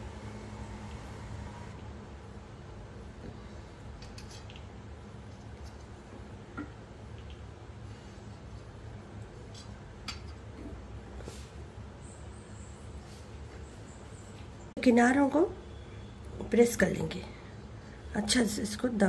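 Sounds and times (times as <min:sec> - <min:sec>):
steady low hum: 0:00.0 - 0:14.9.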